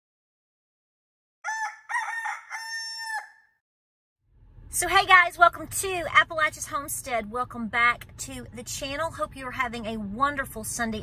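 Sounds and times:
rooster crowing: 0:01.4 - 0:03.6.

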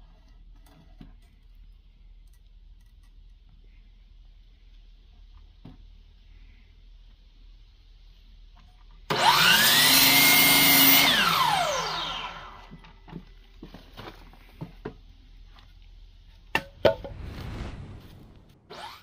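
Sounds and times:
mitre saw whining: 0:09.1 - 0:12.8, 0:18.6 - 0:19.0
saw blade cutting timber: 0:18.7 - 0:19.0.

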